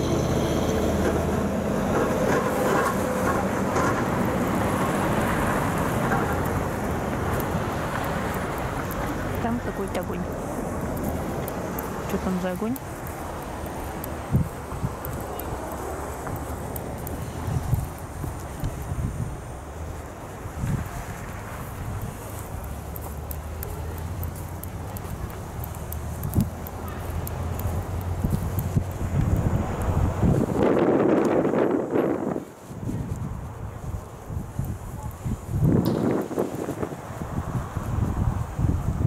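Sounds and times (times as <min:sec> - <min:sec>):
wind rumble: 0:00.0 - 0:39.0
footsteps crunching on snow: 0:03.9 - 0:38.6.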